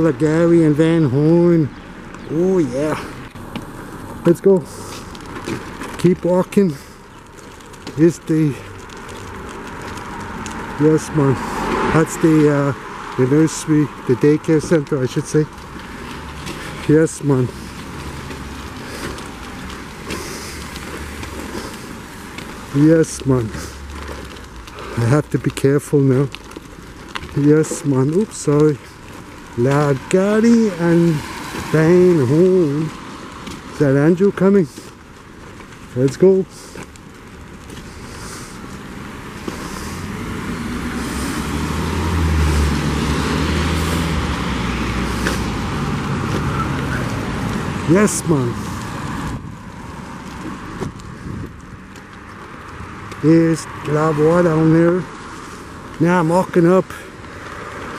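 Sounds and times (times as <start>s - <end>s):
car engines passing: 0.0s - 57.9s
traffic rumble: 0.0s - 57.9s
tyres hissing on wet road: 0.0s - 57.9s.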